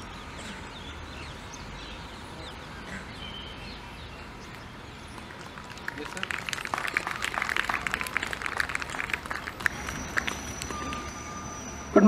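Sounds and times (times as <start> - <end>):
audience applauding: 5.2 - 11.4.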